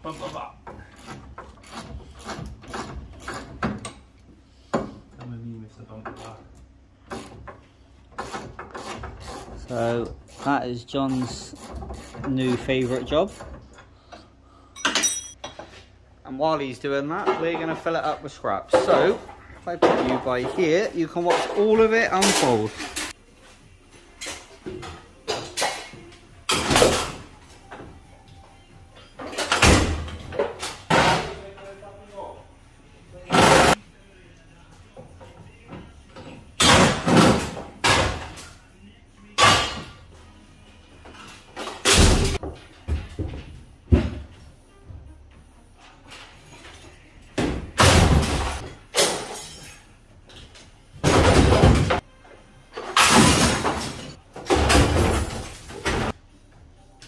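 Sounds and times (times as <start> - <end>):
scrap metal crashing and clanging: 52.8 - 56.1.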